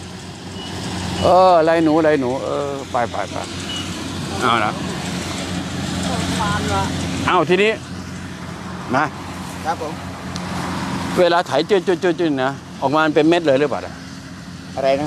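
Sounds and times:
combine harvester engine humming: 0.0 - 15.0
voices: 1.2 - 15.0.

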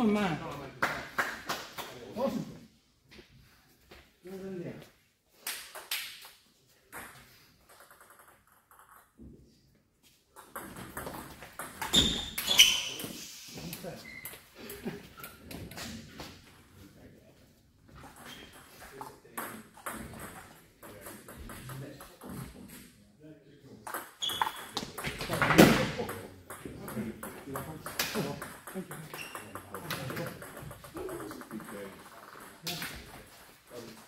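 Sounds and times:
voices in a large hall: 0.0 - 5.0.

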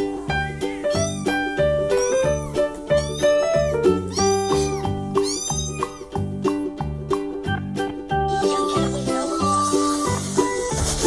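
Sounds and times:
background music with beat: 0.0 - 11.0
cat meowing: 0.8 - 6.2.

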